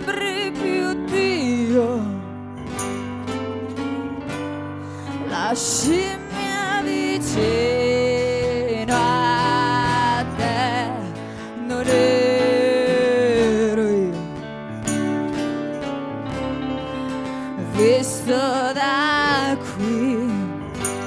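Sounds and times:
person singing: 0.0 - 2.5, 5.0 - 14.6, 17.4 - 21.0
acoustic guitar: 0.0 - 21.0.

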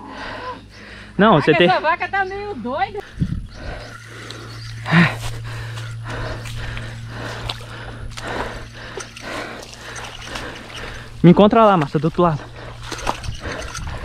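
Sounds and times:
steady low hum: 0.0 - 14.0
breathy grunt: 3.6 - 11.2
footsteps rustling through grass: 4.7 - 8.4.

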